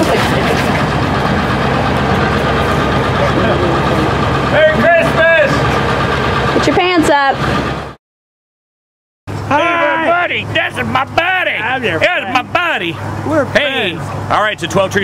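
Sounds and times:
voices calling out: 0.0s - 7.8s, 9.3s - 15.0s
vehicle engine idling: 0.0s - 8.0s, 9.3s - 15.0s.

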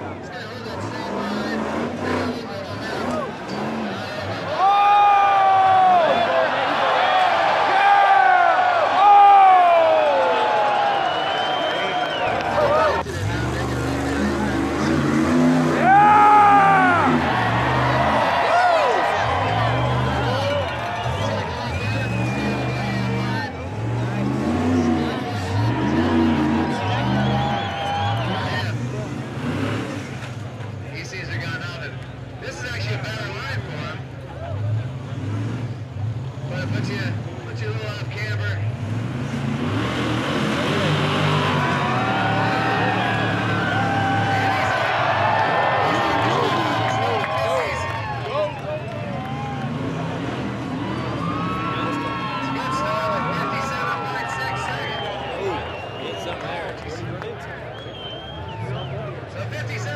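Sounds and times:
engine revving in bursts: 0.9s - 4.1s, 12.6s - 18.4s, 19.2s - 30.5s, 34.7s - 37.4s, 38.6s - 47.9s, 48.8s - 53.8s
spectators yelling: 2.8s - 29.8s, 39.6s - 59.9s
crowd whooping: 2.9s - 30.0s, 39.6s - 59.9s
whistles: 10.7s - 12.9s, 19.6s - 23.1s, 26.6s - 28.7s, 50.9s - 52.4s, 54.2s - 59.2s.

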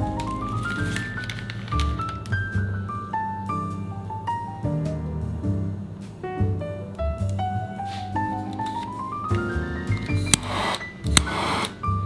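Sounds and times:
piano music: 0.0s - 12.0s
kitchen torch clicking: 10.2s - 11.8s.

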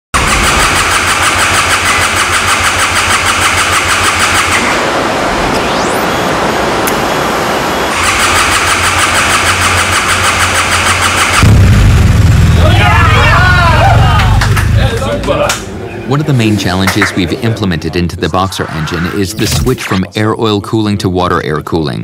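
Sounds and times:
engine running: 0.2s - 15.8s
starter cranking engine: 8.0s - 11.4s.

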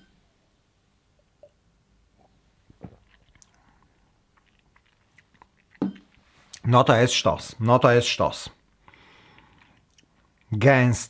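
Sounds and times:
man sipping and swallowing: 2.2s - 6.6s.

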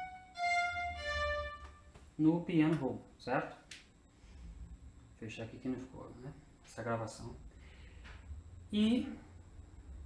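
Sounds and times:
short violin-like string notes: 0.0s - 1.9s.

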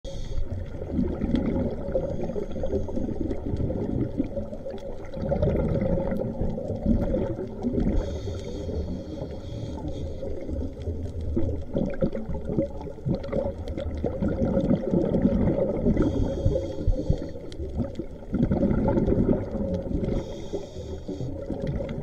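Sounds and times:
muffled underwater rumble: 0.0s - 22.0s
faint clicks and crackles: 0.1s - 22.0s.

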